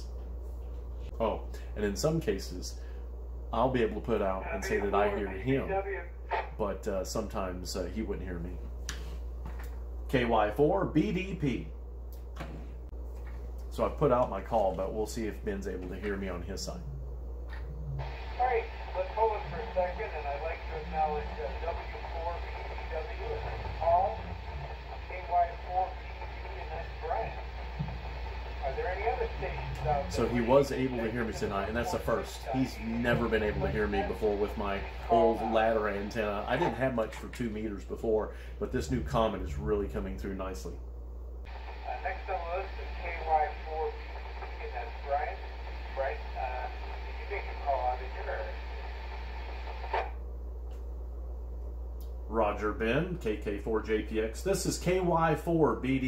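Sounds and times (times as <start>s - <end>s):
steady low hum: 0.0s - 56.0s
voice over radio speaker: 4.0s - 6.8s, 17.6s - 37.8s, 38.5s - 40.4s, 41.5s - 50.1s
steady hiss: 18.0s - 40.8s, 41.5s - 50.2s.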